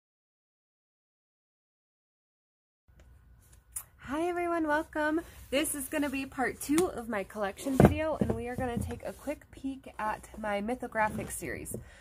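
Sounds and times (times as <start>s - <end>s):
person speaking: 3.8s - 11.8s.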